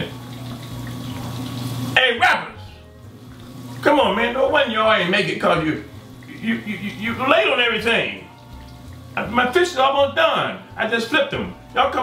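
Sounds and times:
fish sizzling in oil: 0.0 - 9.8.

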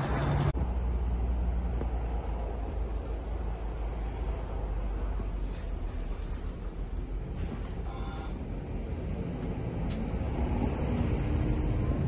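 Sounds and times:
outdoor roadside noise: 0.0 - 12.0.

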